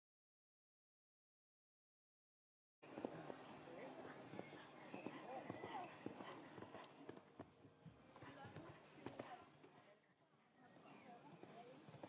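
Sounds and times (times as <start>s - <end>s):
horse hooves cantering on sand: 2.8s - 9.8s, 10.8s - 12.0s
faint voices: 2.8s - 12.0s.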